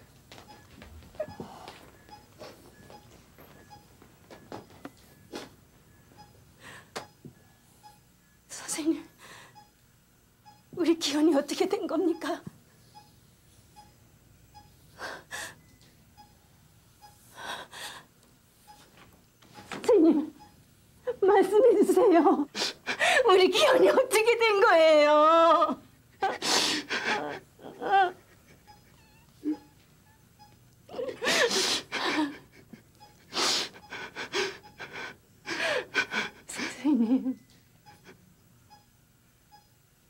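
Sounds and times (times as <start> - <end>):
woman sobbing: 21.1 - 24.3, 25.2 - 29.8, 30.9 - 38.2
woman's tearful gasping breaths: 22.5 - 23.3, 26.2 - 28.2, 30.9 - 36.9
faint short beeps: 39.5 - 39.8.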